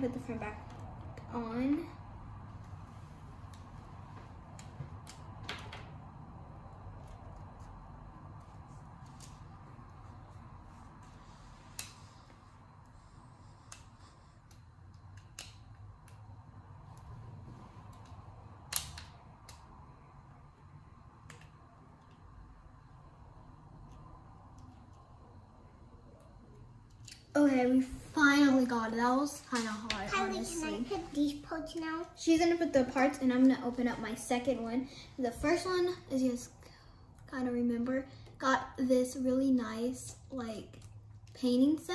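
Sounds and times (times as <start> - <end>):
low room hum: 0.0 - 41.9.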